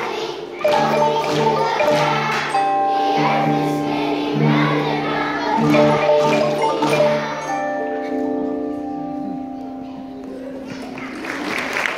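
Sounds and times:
children's choir singing: 0:00.0 - 0:08.8
xylophones playing: 0:00.0 - 0:10.0.

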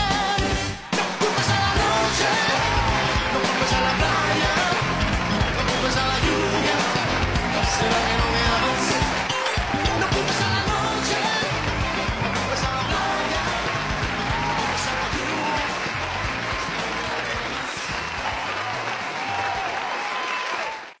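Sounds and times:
live pop band music: 0:00.0 - 0:18.8
crowd cheering: 0:00.4 - 0:21.0.

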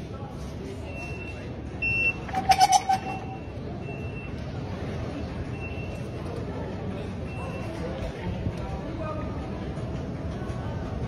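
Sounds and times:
ticket gate reader beep: 0:00.8 - 0:04.5, 0:05.5 - 0:06.2
pulsing tone: 0:02.2 - 0:03.6.

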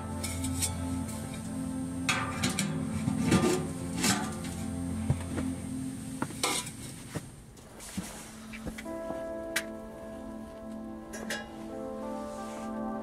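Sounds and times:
metal pipes clanking and rattling: 0:00.0 - 0:05.5, 0:06.2 - 0:07.0, 0:11.1 - 0:11.6
background music: 0:00.0 - 0:13.0.

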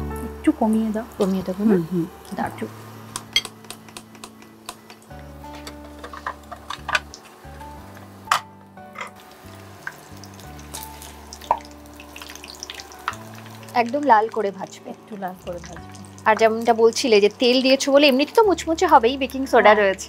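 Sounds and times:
fritters sizzling in hot oil: 0:00.0 - 0:20.0
soft background music: 0:00.0 - 0:20.0.

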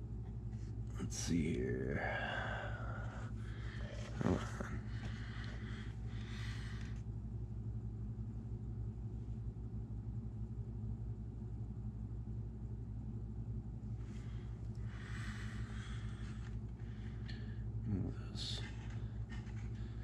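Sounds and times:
low throbbing hum: 0:00.0 - 0:20.0.

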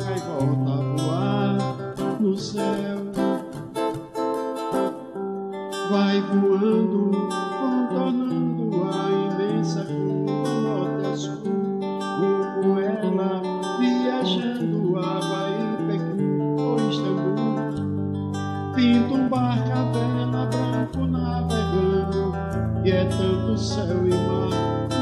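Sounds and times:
man singing: 0:00.0 - 0:04.0, 0:05.8 - 0:17.9, 0:18.6 - 0:25.0
classical guitar strummed and picked: 0:00.0 - 0:25.0.

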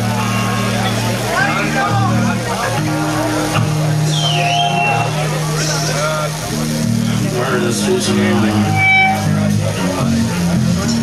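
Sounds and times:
drums: 0:00.0 - 0:11.0
heavily distorted guitar and bass: 0:00.0 - 0:11.0.

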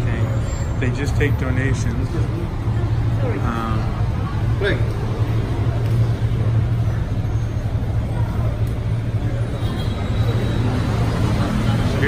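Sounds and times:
faint voices murmuring: 0:00.0 - 0:12.0
road traffic rumble: 0:00.0 - 0:12.0.

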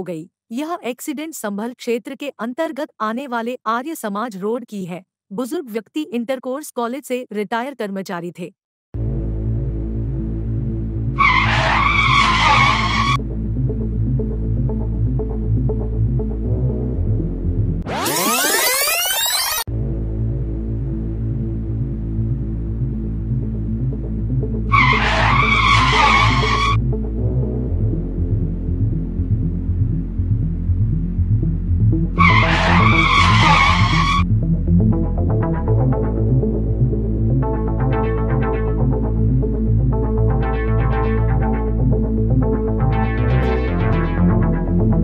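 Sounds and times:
music with drone and pulsing beat: 0:09.0 - 0:17.8, 0:19.7 - 0:45.0
tyre screech sound effect: 0:11.2 - 0:13.2, 0:24.7 - 0:26.8, 0:32.2 - 0:34.2.

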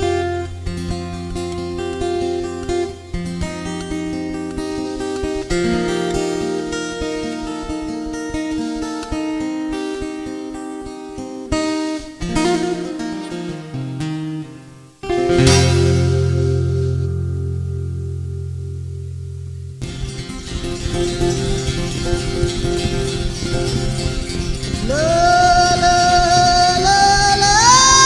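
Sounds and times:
fingerstyle acoustic guitar: 0:00.0 - 0:28.0.

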